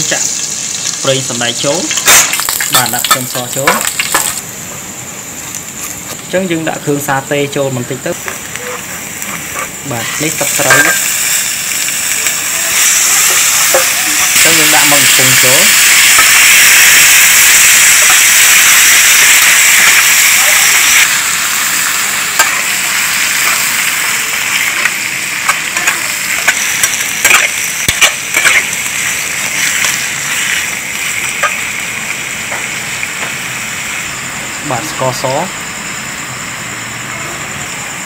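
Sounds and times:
squid sizzling in hot oil: 0.0 - 4.5, 7.8 - 36.9
metal spatula scraping a wok: 25.5 - 28.8.

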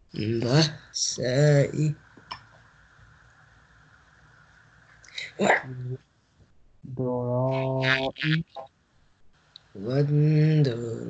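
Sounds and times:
man reciting: 0.2 - 2.0, 5.2 - 6.0, 6.9 - 8.5, 9.8 - 11.0.

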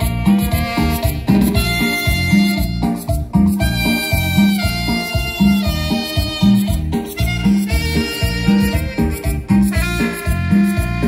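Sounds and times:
held brass notes: 0.0 - 11.0
live latin dance band: 0.0 - 11.0
steady bass beat: 0.0 - 11.0.

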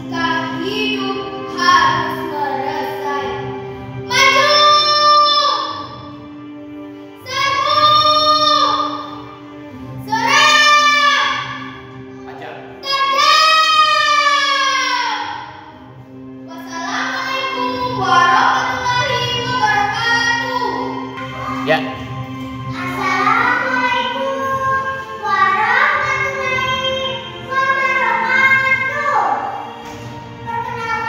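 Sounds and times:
girl reciting a poem: 0.0 - 6.0, 7.2 - 9.3, 10.0 - 15.8, 16.4 - 21.6, 22.6 - 31.0
soft background music: 0.0 - 31.0.

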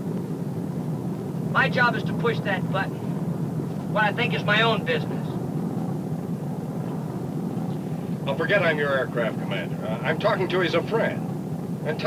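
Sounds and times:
piston engines droning: 0.0 - 12.0.

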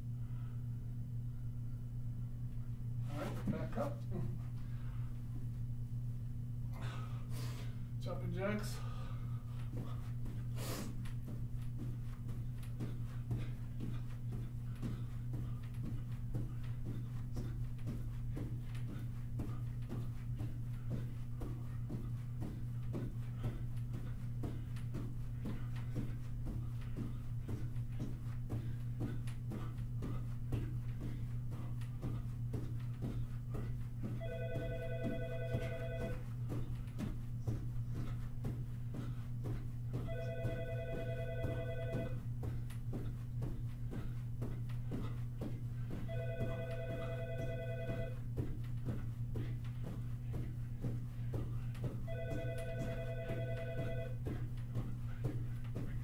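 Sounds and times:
steady low hum: 0.0 - 56.0
feet thudding in jumping jacks: 3.0 - 5.7, 6.8 - 56.0
telephone ringing: 34.2 - 36.2, 40.1 - 42.2, 46.1 - 48.2, 52.1 - 54.2.

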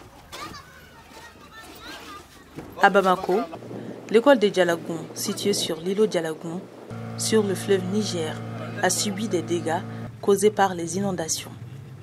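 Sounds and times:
children talking: 0.2 - 3.6
outdoor ambience: 6.6 - 10.3.

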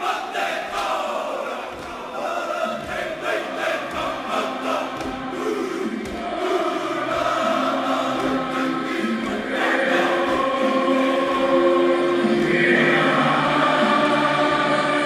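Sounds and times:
choir singing held notes: 0.0 - 15.0.

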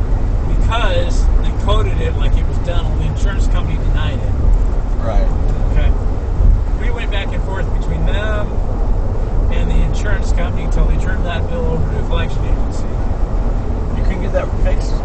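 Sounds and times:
car engine and tyres rumbling: 0.0 - 15.0.

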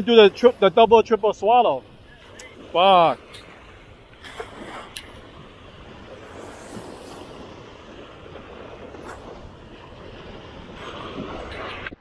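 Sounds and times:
small waves breaking on sand: 0.0 - 12.0
wind on microphone: 0.0 - 12.0.

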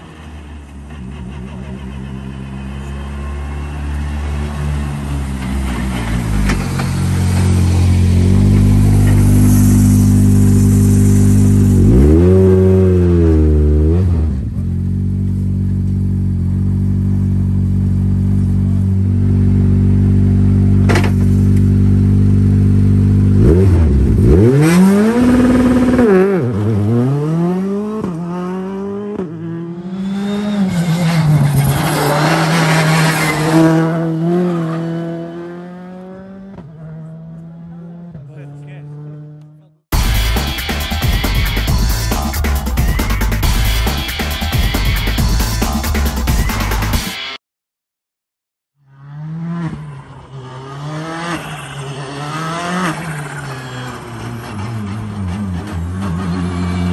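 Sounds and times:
car engine idling and revving: 0.0 - 47.0, 48.8 - 56.9
car accelerating hard: 22.2 - 39.6, 48.9 - 56.9.

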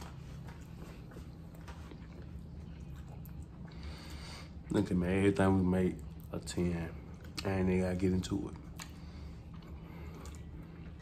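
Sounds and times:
people chewing food: 0.0 - 11.0
steady low hum: 0.0 - 11.0.

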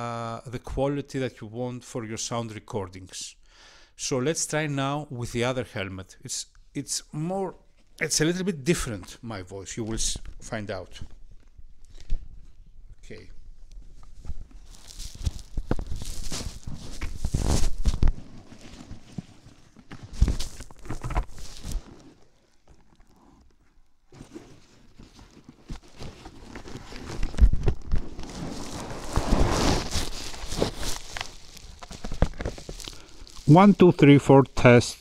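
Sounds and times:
microphone handling rustling: 9.8 - 33.5
rubbing on microphone: 13.9 - 23.5, 24.1 - 33.7.

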